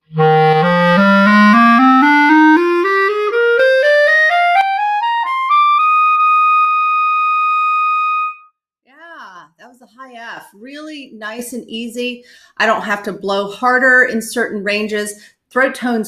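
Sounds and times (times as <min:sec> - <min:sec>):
clarinet playing a rising scale: 0:00.0 - 0:08.5.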